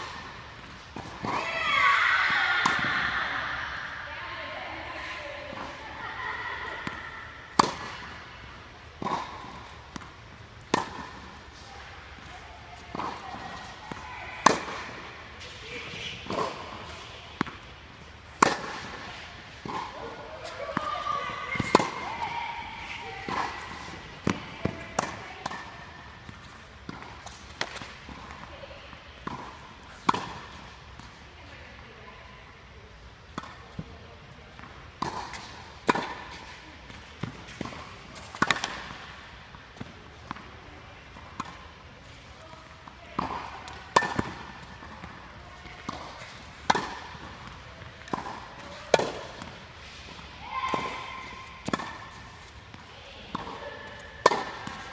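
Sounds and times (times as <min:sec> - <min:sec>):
tennis balls bouncing on hard court: 0:00.0 - 0:03.5, 0:05.5 - 0:31.8, 0:33.3 - 0:54.9
tennis balls struck by racquets: 0:00.0 - 0:03.6, 0:06.6 - 0:31.6, 0:33.2 - 0:54.9.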